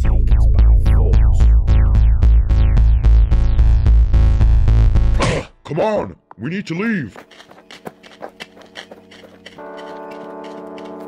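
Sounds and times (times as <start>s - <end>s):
sustained synthesizer chord: 0.0s - 5.1s
hurried footsteps: 6.7s - 11.0s.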